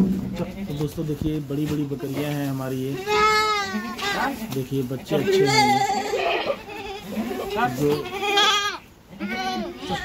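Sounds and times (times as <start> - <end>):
goat kid bleating: 2.8 - 4.5, 5.1 - 10.0.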